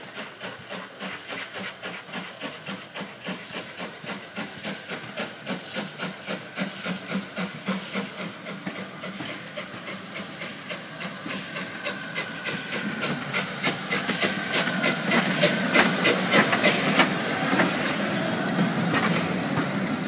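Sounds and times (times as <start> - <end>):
steam hiss: 0.0 - 20.0
steam locomotive exhaust chuffs: 0.0 - 20.0.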